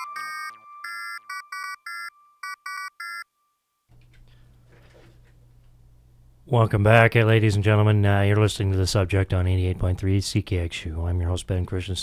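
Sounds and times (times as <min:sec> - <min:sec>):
staccato synthesizer beeps: 0:00.0 - 0:02.9
low steady hum: 0:03.9 - 0:10.1.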